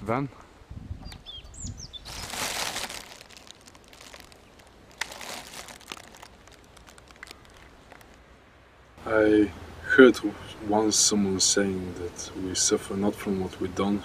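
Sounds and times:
high bird chirps: 0:01.0 - 0:02.5
rustling: 0:02.0 - 0:08.2.

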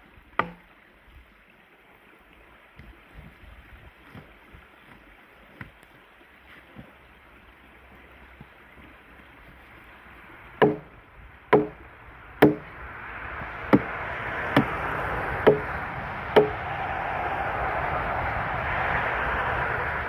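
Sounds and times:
axe chopping into log: 0:00.4 - 0:00.6, 0:10.6 - 0:10.9, 0:11.5 - 0:11.8, 0:12.4 - 0:12.7, 0:15.5 - 0:15.7
steady rushing noise: 0:09.5 - 0:20.0.

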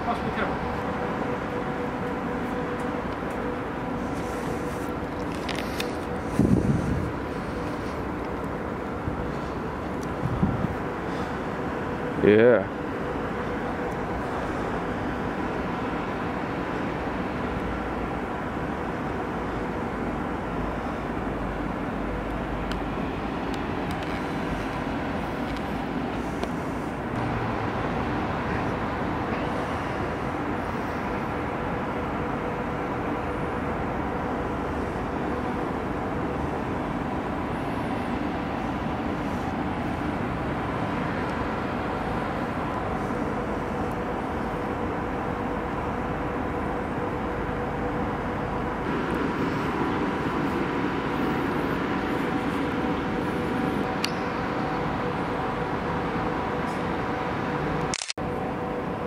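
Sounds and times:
distant city traffic rumble: 0:00.0 - 0:59.0.

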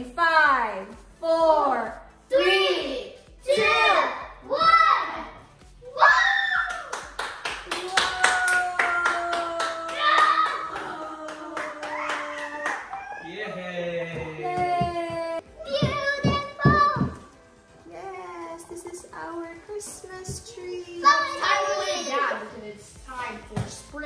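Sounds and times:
group clapping rapidly: 0:06.6 - 0:13.2
people cheering: 0:07.6 - 0:15.4.

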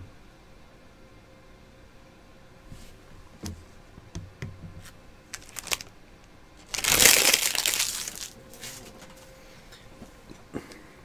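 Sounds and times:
foil wrapper crumpling: 0:05.3 - 0:05.9, 0:06.6 - 0:08.9.

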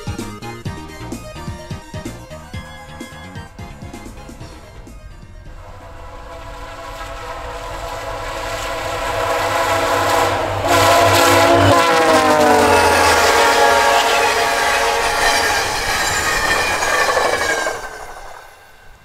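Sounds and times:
locomotive engine and wheel noise: 0:00.0 - 0:19.0
locomotive air horn: 0:01.2 - 0:15.9.

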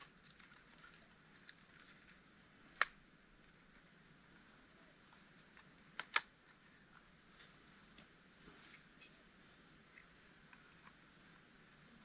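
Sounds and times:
plastic drone arms clicking: 0:05.6 - 0:06.6.

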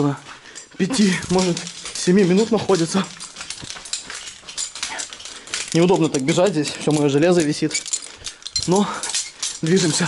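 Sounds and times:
climbing gear jangling: 0:00.0 - 0:10.0
hurried footsteps: 0:00.0 - 0:10.0
hard breathing: 0:00.2 - 0:02.0, 0:03.0 - 0:05.8, 0:07.8 - 0:09.7.

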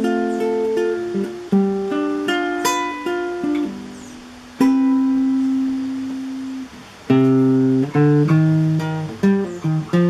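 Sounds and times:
plucked guitar note ringing: 0:00.0 - 0:10.0.

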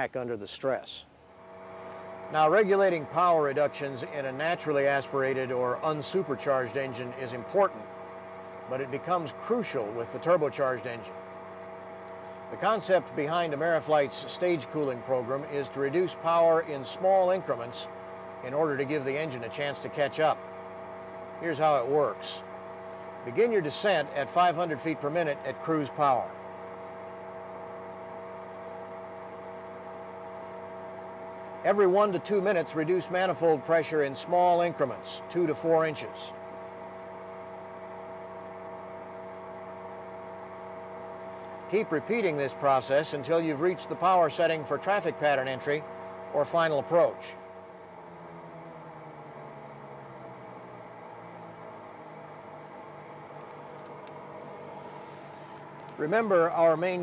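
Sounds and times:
steady hum of held tones: 0:00.0 - 0:57.0
aircraft engine and propeller droning: 0:01.2 - 0:57.0.

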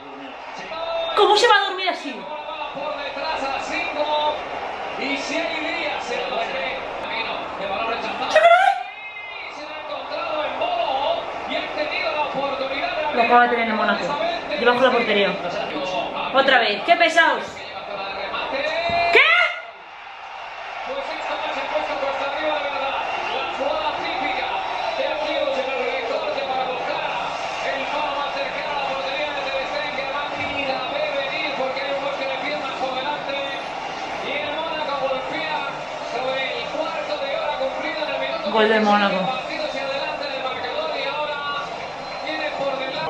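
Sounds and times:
male commentator talking: 0:00.0 - 0:19.6, 0:20.8 - 0:43.0
stadium crowd noise: 0:00.0 - 0:43.0
loud exclamation: 0:08.2 - 0:09.1, 0:18.8 - 0:20.0.

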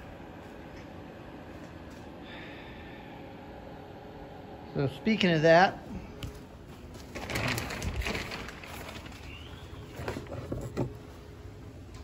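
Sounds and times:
plastic sheeting rustling: 0:06.7 - 0:10.3.

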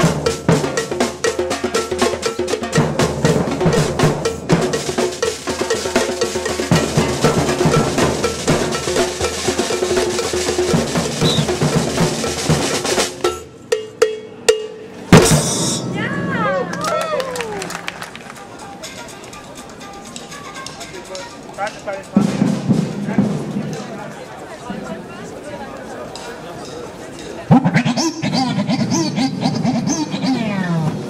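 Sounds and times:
street percussion band drumming: 0:00.0 - 0:31.0.

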